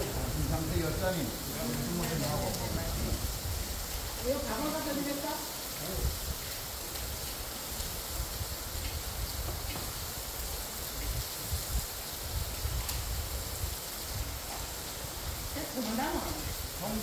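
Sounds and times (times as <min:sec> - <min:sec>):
low uneven rumble: 0:00.0 - 0:04.6
constant hiss: 0:00.0 - 0:17.0.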